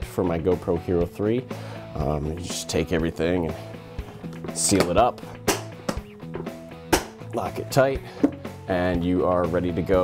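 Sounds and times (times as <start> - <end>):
quiet guitar music: 2.4 - 7.5
plastic case snapping shut: 4.3 - 6.1, 6.9 - 7.2.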